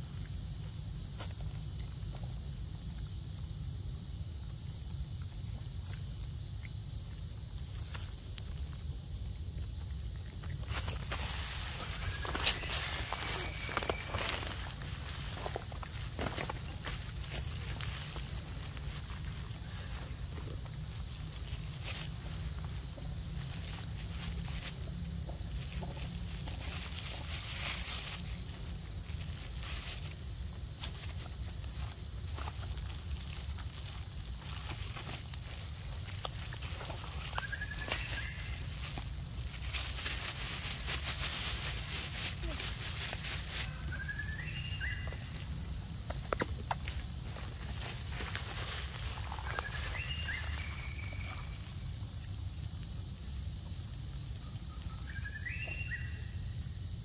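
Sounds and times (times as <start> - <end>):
rustling: 10.4 - 51.7.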